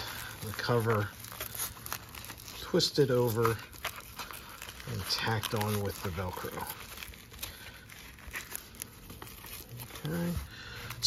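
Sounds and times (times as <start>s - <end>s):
fabric rustling and crinkling: 0.0s - 11.0s
hook-and-loop strip crackling: 0.0s - 11.0s.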